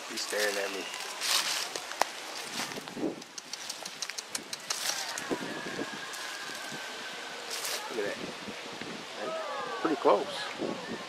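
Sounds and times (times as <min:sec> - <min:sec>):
dry leaves and twigs crackling: 0:00.0 - 0:08.3.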